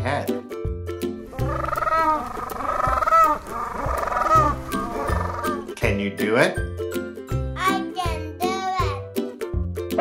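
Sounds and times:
penguins calling: 1.2s - 5.8s.

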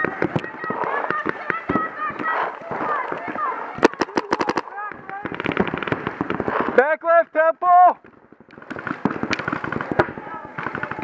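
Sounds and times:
paintball markers firing: 0.0s - 6.8s, 8.0s - 11.0s.

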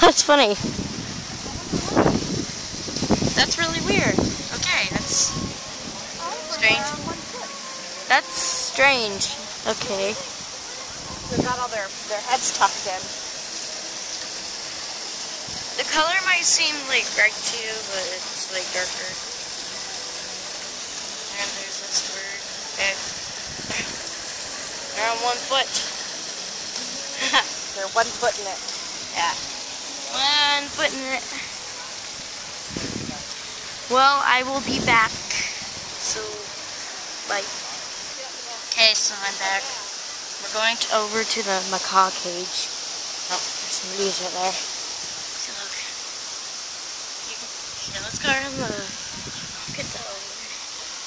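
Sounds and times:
steady outdoor hiss: 0.0s - 51.0s
people's voices: 3.3s - 13.2s, 21.2s - 24.1s, 26.7s - 44.7s.

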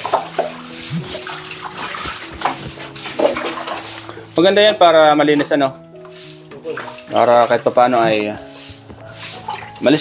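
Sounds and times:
water splashing in a basin: 0.0s - 4.4s, 9.4s - 10.0s
dishes knocking against basin: 1.9s - 3.9s.

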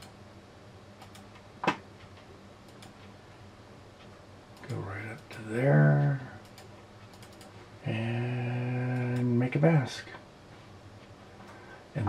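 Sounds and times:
faint clicks: 1.0s - 3.1s, 6.4s - 7.5s.

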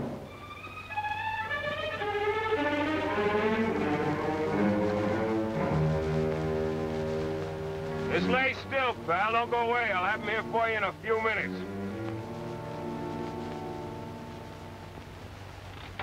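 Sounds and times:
orchestral strings: 0.0s - 15.8s.

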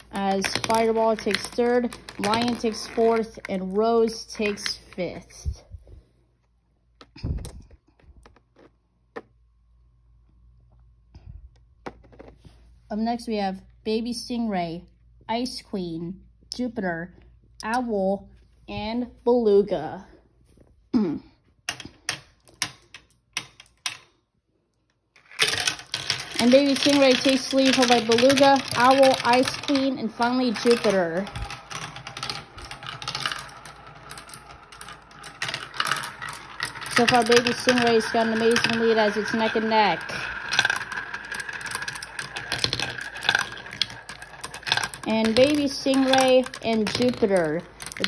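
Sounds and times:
marbles clicking onto plastic: 0.0s - 3.6s, 25.2s - 48.0s
marbles clattering down plastic track: 0.0s - 4.8s, 25.2s - 48.0s
person clearing throat: 20.9s - 21.4s.

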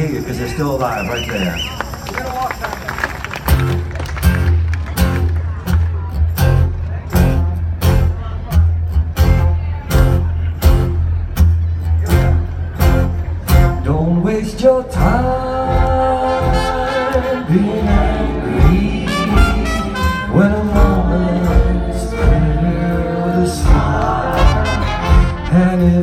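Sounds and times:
low bass line: 3.6s - 26.0s
acoustic guitar strumming: 6.2s - 26.0s
drums on a steady beat: 17.8s - 22.7s, 23.6s - 25.5s.

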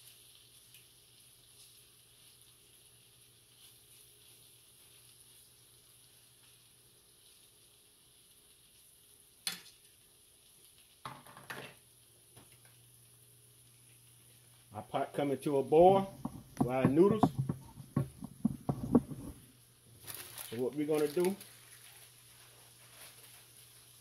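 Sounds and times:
sausage sizzling in a skillet: 0.0s - 24.0s.

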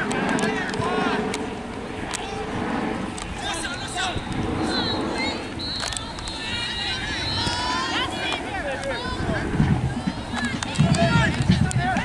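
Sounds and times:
low background rumble: 0.0s - 12.0s
people shouting and calling: 3.3s - 12.0s.

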